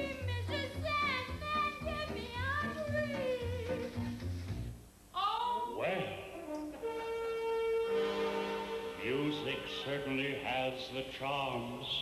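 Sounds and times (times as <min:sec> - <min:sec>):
woman singing: 0:00.0 - 0:04.2.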